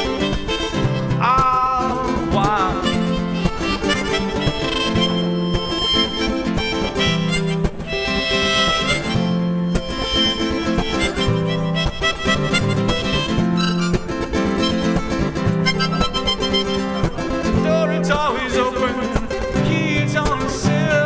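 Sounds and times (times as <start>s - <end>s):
harmonica solo: 0.0s - 19.5s
strummed guitar: 0.0s - 21.0s.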